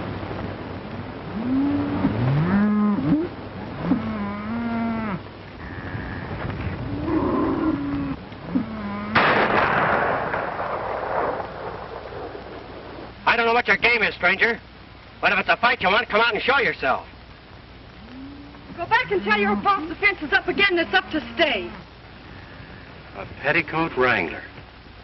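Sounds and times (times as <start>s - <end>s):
cattle mooing: 1.3s - 9.3s, 18.0s - 19.8s
sudden loud blast: 9.2s - 12.4s.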